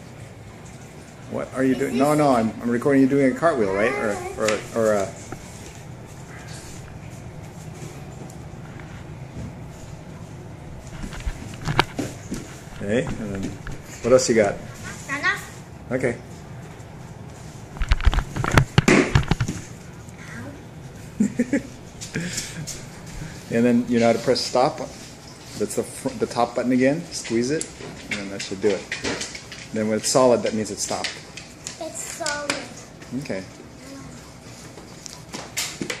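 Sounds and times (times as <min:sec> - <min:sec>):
camera bumping and rubbing: 0:10.9 - 0:13.8, 0:17.7 - 0:19.8.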